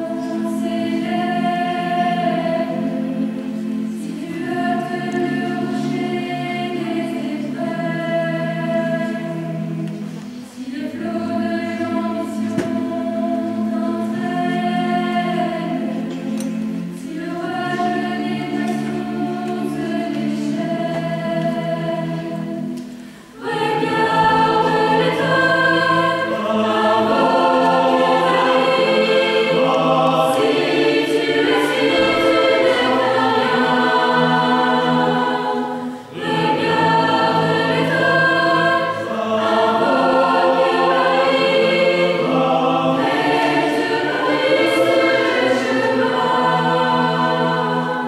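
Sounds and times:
mixed choir singing in harmony: 0:00.0 - 0:48.0.

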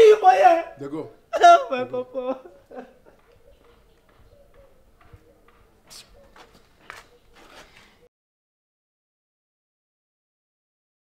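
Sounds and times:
faint footsteps: 0:02.4 - 0:08.1.

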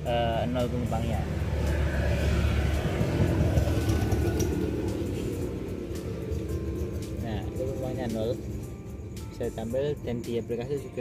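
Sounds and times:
passing vehicle rumble: 0:00.0 - 0:11.0.

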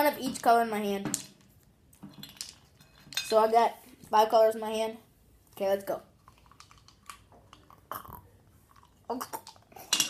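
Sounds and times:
person chewing hard candy: 0:06.2 - 0:09.9.

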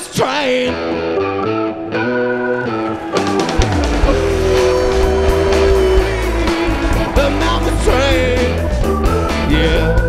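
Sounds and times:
blues-rock band playing: 0:00.0 - 0:10.0
bending guitar note: 0:01.7 - 0:09.3.

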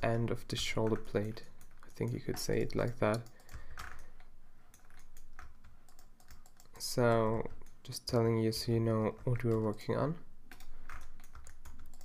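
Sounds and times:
computer keyboard key presses: 0:10.5 - 0:12.0.

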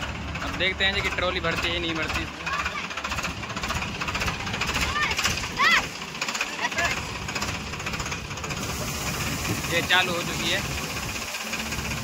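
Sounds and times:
diesel engines clattering: 0:00.0 - 0:12.0
grain pouring hiss: 0:08.4 - 0:12.0.

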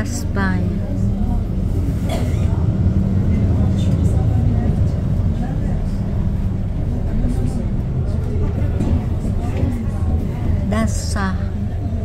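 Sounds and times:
bus engine droning: 0:00.0 - 0:12.0
faint voices: 0:00.0 - 0:12.0.

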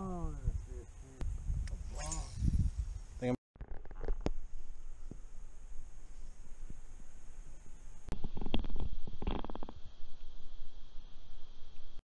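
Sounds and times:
low steady rumble: 0:04.2 - 0:12.0.

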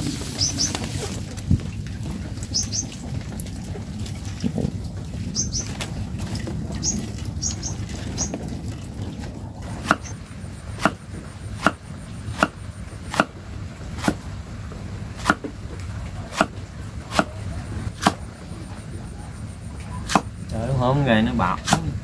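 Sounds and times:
small bird chirping: 0:00.3 - 0:00.8, 0:02.4 - 0:03.0, 0:05.3 - 0:05.8, 0:06.8 - 0:08.4.

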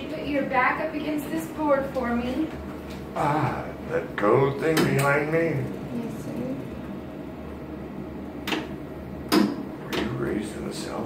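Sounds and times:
low equipment hum: 0:00.0 - 0:11.0.

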